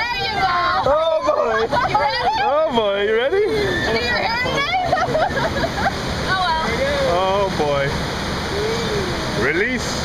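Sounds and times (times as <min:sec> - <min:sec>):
whitewater rushing and splashing: 0:00.0 - 0:10.0.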